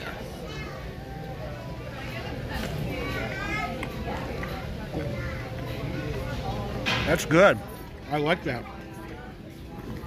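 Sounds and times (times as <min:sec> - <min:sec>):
children's voices: 0:00.0 - 0:01.3, 0:02.5 - 0:06.3.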